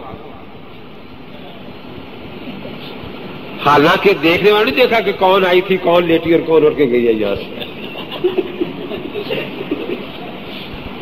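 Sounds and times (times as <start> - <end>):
recording hiss and rumble: 0.0 - 11.0.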